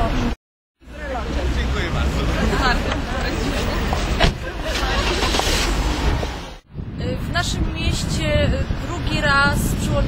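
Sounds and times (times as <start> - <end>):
people talking: 0.0 - 5.6, 7.0 - 10.0
passing traffic: 0.0 - 10.0.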